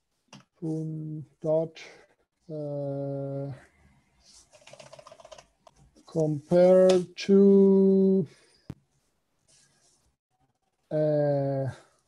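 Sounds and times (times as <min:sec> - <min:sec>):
computer keyboard typing: 0:04.4 - 0:05.8.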